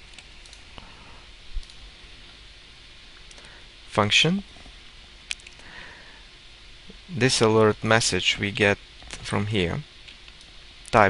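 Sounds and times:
low steady hiss: 0.0s - 11.0s
keyboard clicks: 1.6s - 1.8s, 5.3s - 5.6s.

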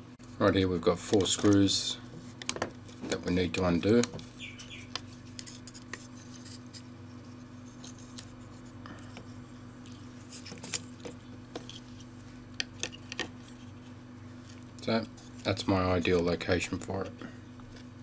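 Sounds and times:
steady low hum: 0.0s - 18.0s
circuit boards being handled: 1.0s - 14.7s.

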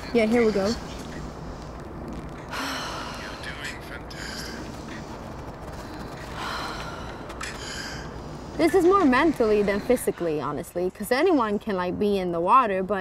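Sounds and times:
woman breathing deeply: 2.4s - 3.4s, 4.1s - 8.7s.

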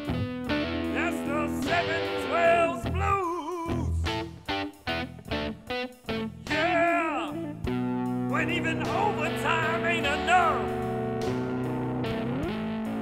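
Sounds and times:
electric guitar phrases: 0.0s - 13.0s
man singing blues: 0.8s - 4.5s, 6.4s - 11.0s.

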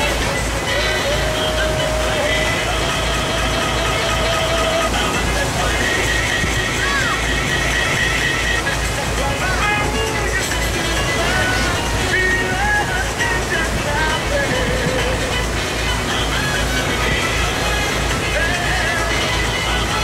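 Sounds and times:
boat engine rumble: 0.0s - 20.0s
music with singing: 0.0s - 20.0s.

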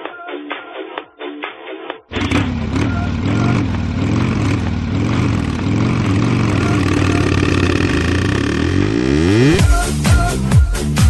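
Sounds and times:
engine-like revving sound effect: 2.1s - 9.8s
steady drone: 2.2s - 9.8s
dance beat: 9.4s - 11.0s.

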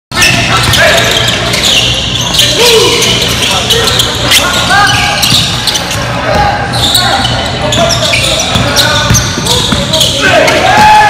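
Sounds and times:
players' voices: 0.1s - 11.0s
sneakers squeaking: 0.1s - 11.0s.

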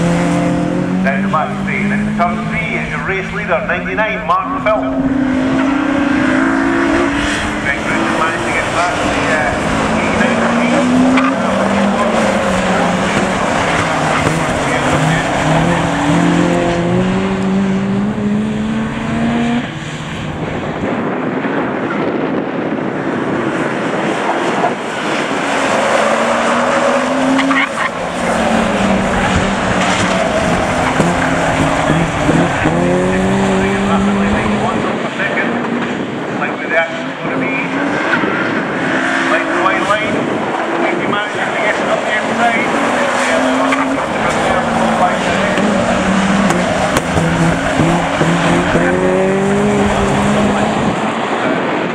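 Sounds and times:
race car engines revving: 0.0s - 51.9s.

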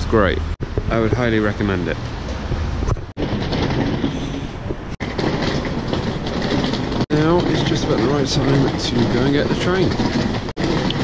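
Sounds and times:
rumbling street noise: 0.0s - 11.0s.

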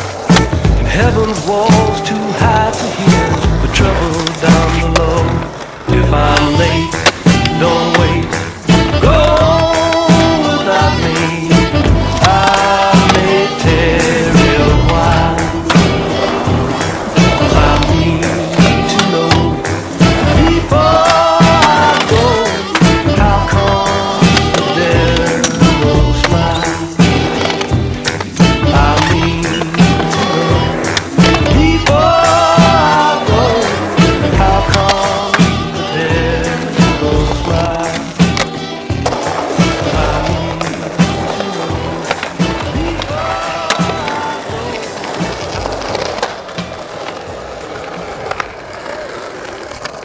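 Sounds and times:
skateboard clacking: 0.0s - 50.0s
skateboard wheels rolling on concrete: 0.0s - 50.0s
song with a steady beat: 0.2s - 46.2s.

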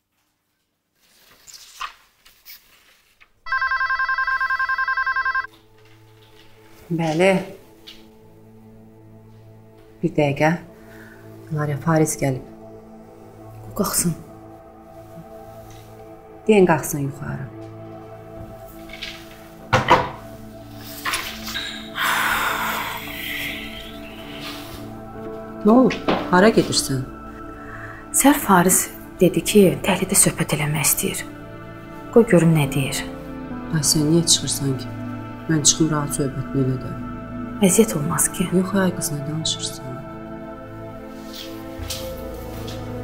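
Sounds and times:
paper rustling: 0.0s - 3.9s, 18.6s - 21.6s, 41.2s - 43.0s
soft background music: 3.4s - 43.0s
telephone warbling ring: 3.5s - 5.5s.

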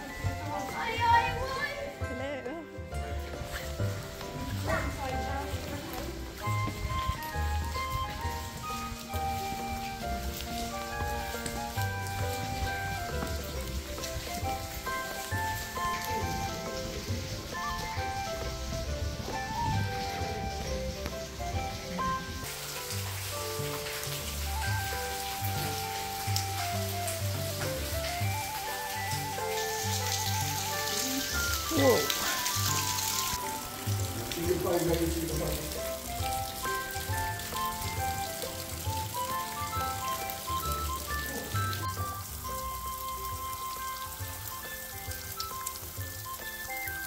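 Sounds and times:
water dripping on rock: 0.0s - 1.8s, 2.9s - 47.0s
melody over bass line: 0.0s - 22.7s.

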